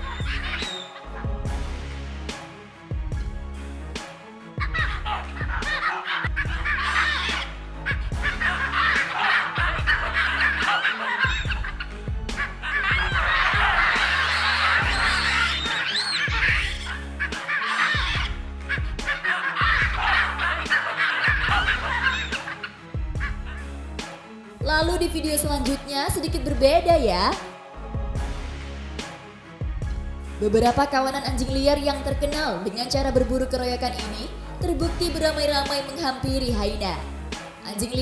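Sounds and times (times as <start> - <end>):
background music with bass line: 0.0 - 38.0
baboons calling and screaming: 13.0 - 17.1.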